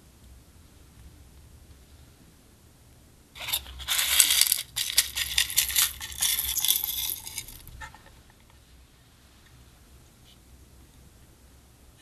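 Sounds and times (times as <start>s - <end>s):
plastic beads pouring into glass dish: 3.4s - 7.7s.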